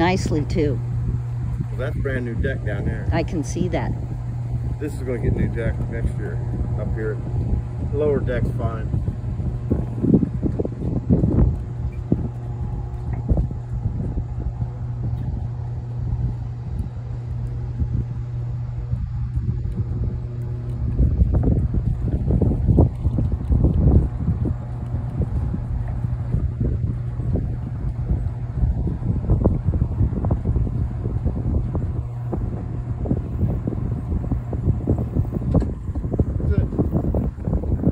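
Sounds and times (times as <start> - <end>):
steady low hum: 0.0 - 37.9
wind buffeting microphone: 0.0 - 37.9.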